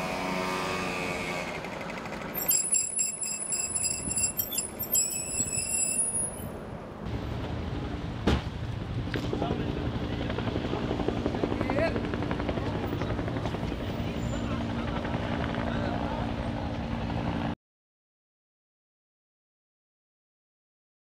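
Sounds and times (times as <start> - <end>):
helicopter flying: 0.0 - 17.6.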